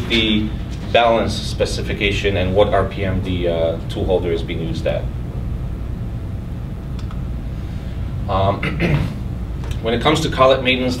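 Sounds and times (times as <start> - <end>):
air conditioning rumble: 0.0 - 11.0.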